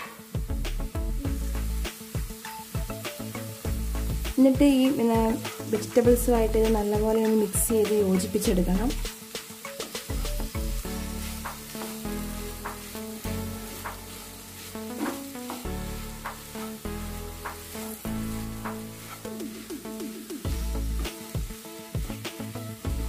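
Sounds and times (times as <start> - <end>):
background music: 0.0 - 23.0
light sizzle of frying food: 0.0 - 23.0
spatula scraping a pan: 10.0 - 16.8, 17.4 - 19.9.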